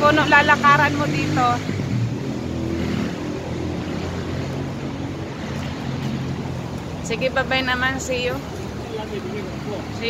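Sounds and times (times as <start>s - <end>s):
road noise hiss: 0.0s - 10.0s.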